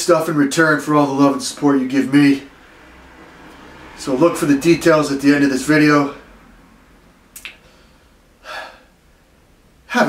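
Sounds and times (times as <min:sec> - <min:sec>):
mouth click: 0:07.3 - 0:07.6
man's sharp breath: 0:07.6 - 0:09.0.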